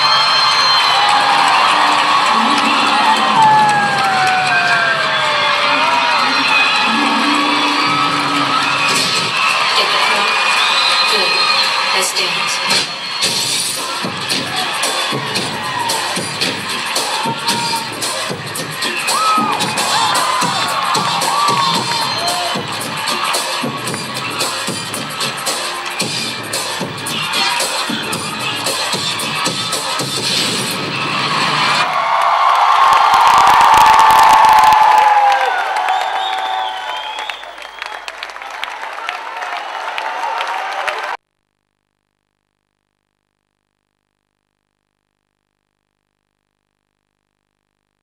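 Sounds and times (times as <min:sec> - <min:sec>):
audience cheering and shouting: 0:00.0 - 0:41.2
dance music with steady beat: 0:06.1 - 0:31.2.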